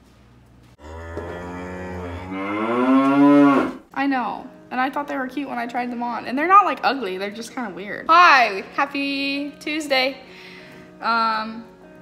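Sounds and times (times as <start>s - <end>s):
cow mooing: 0.8s - 3.9s.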